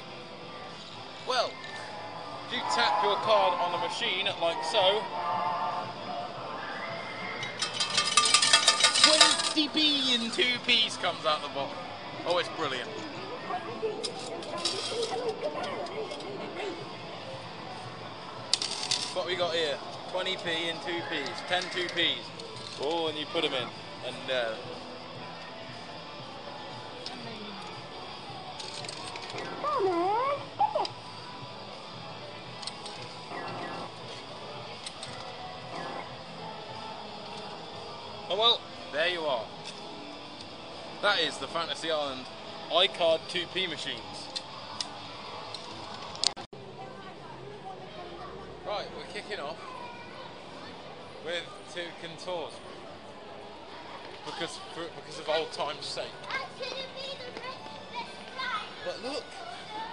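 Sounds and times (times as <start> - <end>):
crowd chatter: 0.0 - 59.9
arcade machine music and jingles: 7.3 - 10.3, 33.2 - 34.2, 35.6 - 36.4
children talking and calling: 11.9 - 19.2, 26.8 - 31.9, 44.0 - 51.7, 52.9 - 59.9.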